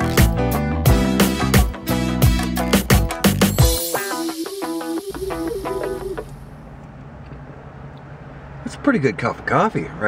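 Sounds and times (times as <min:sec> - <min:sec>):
intro music note: 0:03.6 - 0:06.7.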